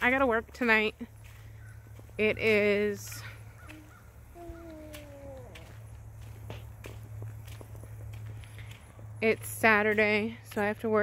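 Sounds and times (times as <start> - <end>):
footsteps on outdoor ground: 0.0 - 11.0.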